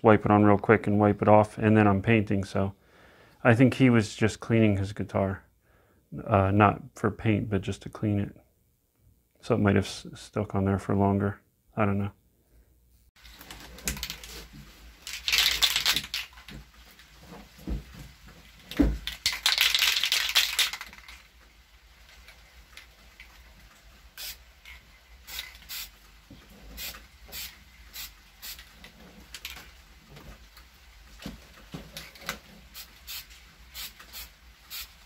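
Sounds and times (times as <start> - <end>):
short spray puffs and clicks: 19.0 - 21.2, 24.2 - 26.0, 26.7 - 29.6, 32.7 - 35.0
aerosol spray can hissing: 24.2 - 24.4, 25.2 - 26.0, 26.7 - 28.7, 32.7 - 35.0.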